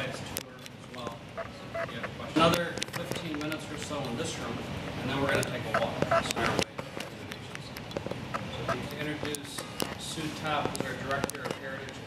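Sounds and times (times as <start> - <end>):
faint voices murmuring: 0.0 - 12.0.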